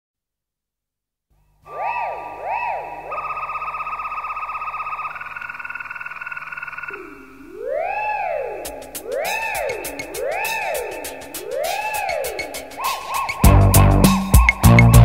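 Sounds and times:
fast-pulsing synthesizer tone: 1.7 - 15.0
siren-like synthesizer sweeps: 1.7 - 15.0.

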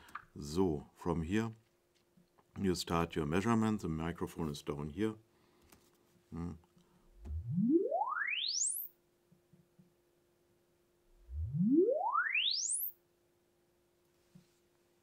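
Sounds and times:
rising sine sweeps: 7.1 - 8.9, 11.1 - 12.9.

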